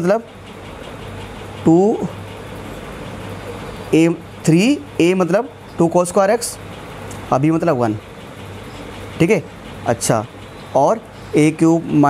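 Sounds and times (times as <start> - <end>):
low constant hum: 0.0 - 12.0.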